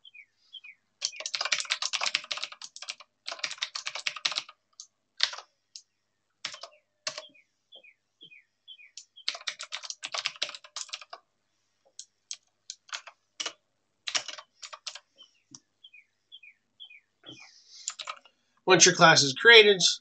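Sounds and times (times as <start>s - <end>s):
typing on computer keyboard: 1.0s - 7.3s, 9.0s - 11.2s, 12.0s - 15.1s, 17.9s - 18.3s.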